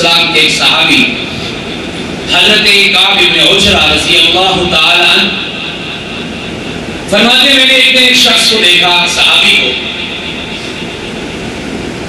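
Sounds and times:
man's amplified voice: 0:00.0 - 0:01.6, 0:02.2 - 0:10.9
electric fan whirring: 0:00.0 - 0:12.0.

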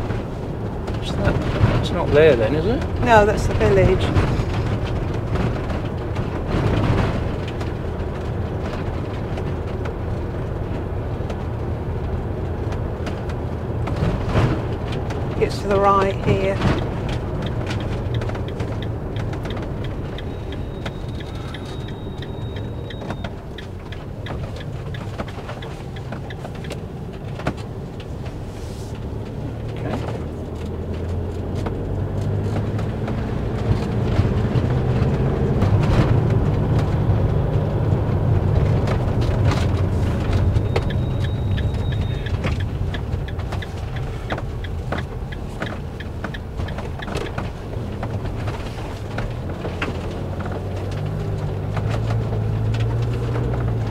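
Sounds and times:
engine and tyre rumble: 0:00.0 - 0:53.9
knocks and rattles: 0:00.0 - 0:53.9.

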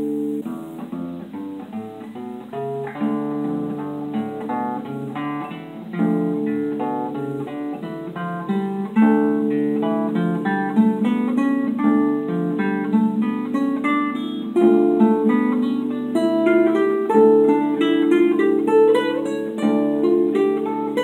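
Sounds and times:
classical guitar fingerstyle: 0:00.0 - 0:21.0.

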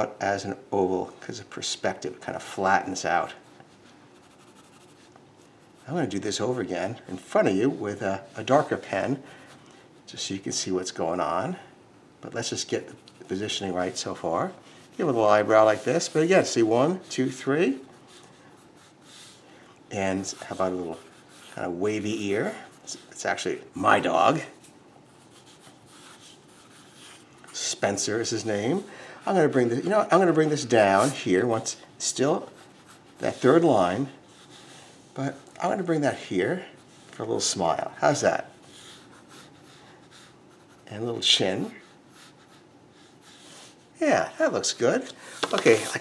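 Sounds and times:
man speaking: 0:00.0 - 0:03.4, 0:05.8 - 0:09.3, 0:10.1 - 0:17.9, 0:19.9 - 0:24.6, 0:27.5 - 0:32.6, 0:33.2 - 0:34.2, 0:35.2 - 0:38.6, 0:40.9 - 0:41.9, 0:44.0 - 0:46.0
pencil scratching on paper: 0:03.3 - 0:06.6, 0:12.5 - 0:19.4, 0:20.1 - 0:23.2, 0:24.5 - 0:31.3, 0:32.4 - 0:35.4, 0:38.1 - 0:41.0, 0:41.6 - 0:43.9.

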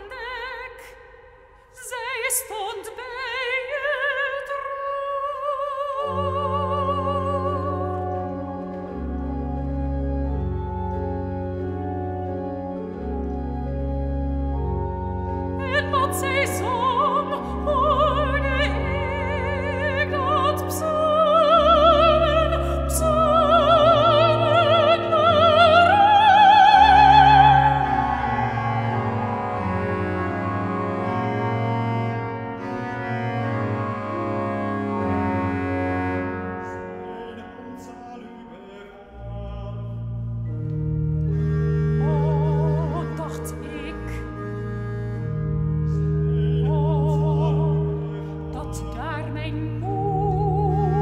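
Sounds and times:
church organ chords: 0:06.0 - 0:51.0.

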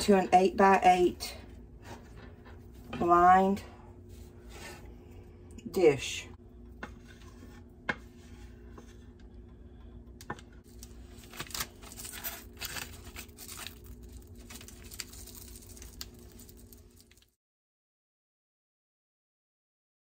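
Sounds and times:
steady low hum: 0:00.0 - 0:17.2
metal pot scraping: 0:06.6 - 0:09.5
parchment crinkling: 0:10.6 - 0:17.4
sprinkles pattering onto fudge: 0:12.0 - 0:17.3.

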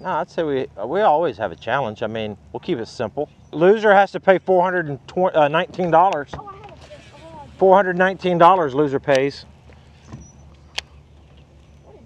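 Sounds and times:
electric trolling motor humming: 0:00.0 - 0:12.0.

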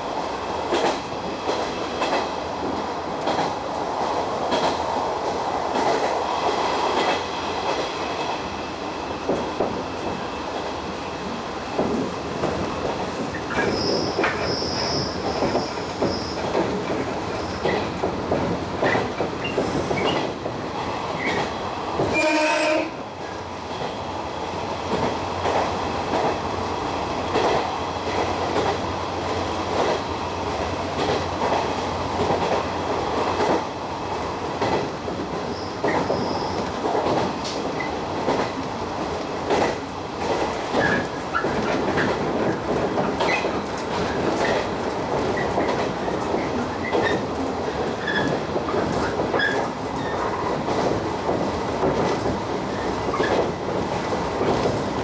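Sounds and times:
rail joint clicks: 0:00.0 - 0:08.4, 0:09.1 - 0:55.0
train wheels rumbling on rail: 0:00.0 - 0:55.0.

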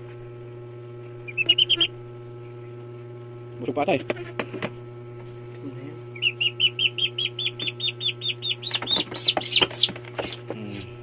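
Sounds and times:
duckling peeping in distress: 0:01.3 - 0:02.0, 0:06.1 - 0:10.8.

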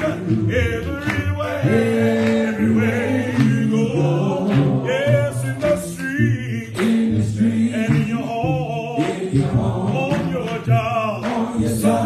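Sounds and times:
group of voices singing: 0:00.0 - 0:12.0
man singing lead: 0:00.0 - 0:12.0.

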